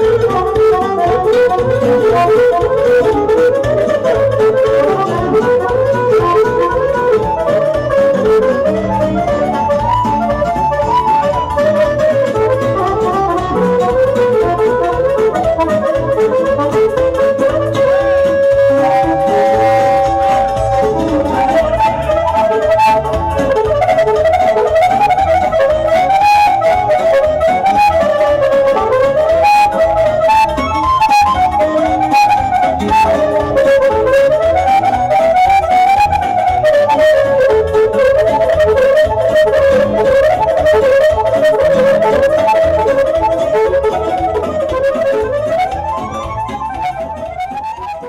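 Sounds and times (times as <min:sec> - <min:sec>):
accordion: 0:00.0 - 0:48.0
keyboard: 0:00.0 - 0:48.0
woodwind melody: 0:00.0 - 0:48.0.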